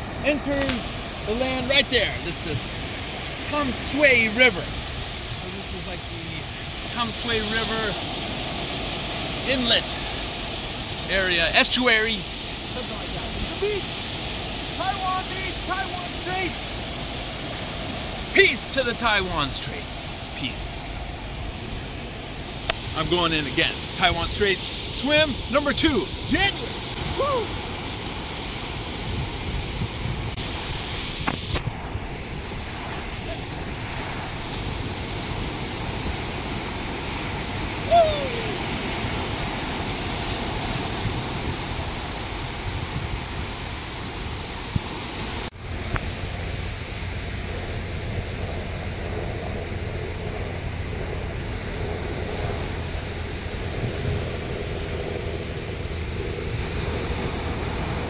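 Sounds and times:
ocean waves breaking: 0.0s - 58.0s
wind buffeting microphone: 0.0s - 58.0s
short falling cry: 37.8s - 38.6s.

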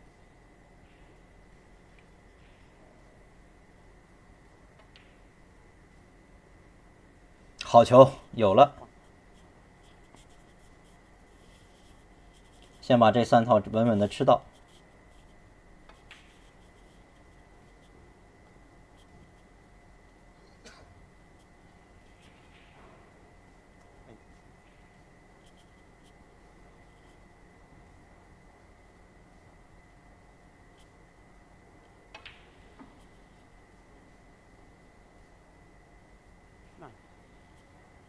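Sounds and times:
faint high hum: 0.0s - 38.0s
faint steady high whine: 0.0s - 38.0s
faint ticks and rustles: 7.6s - 22.7s, 23.8s - 28.0s, 36.8s - 38.0s.

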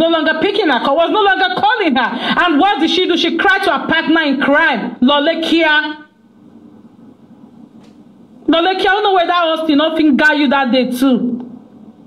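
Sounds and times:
faint low background noise: 0.0s - 12.0s.

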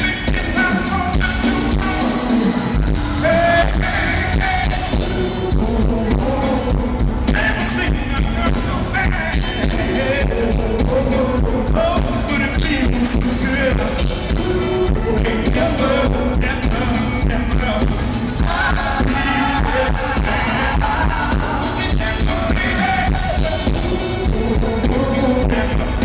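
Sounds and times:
live band playing: 0.0s - 26.0s
man singing: 0.0s - 26.0s
steady drum beat: 0.0s - 26.0s.

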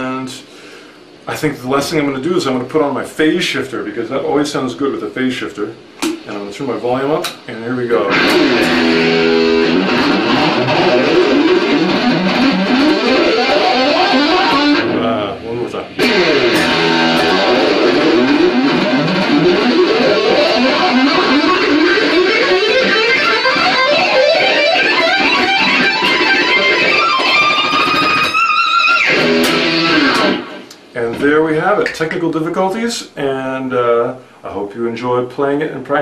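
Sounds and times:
electric guitar fast runs: 8.1s - 15.0s, 16.0s - 30.6s.

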